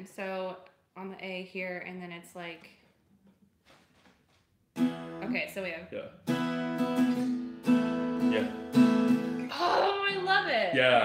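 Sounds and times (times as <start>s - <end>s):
acoustic guitar chord strummed: 4.8s - 11.0s.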